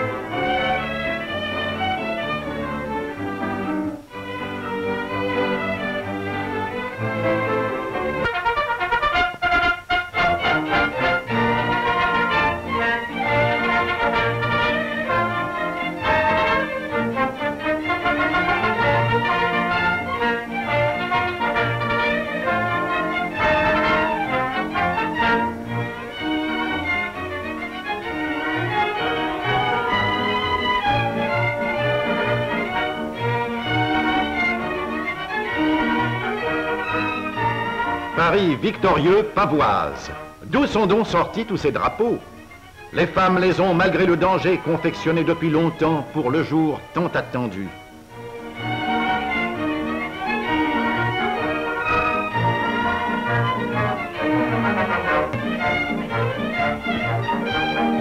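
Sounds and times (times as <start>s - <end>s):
orchestral music with strings: 0.0s - 58.0s.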